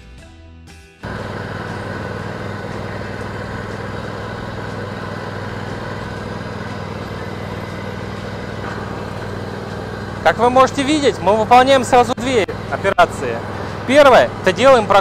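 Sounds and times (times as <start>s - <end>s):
lawn tractor engine running: 1.0s - 15.0s.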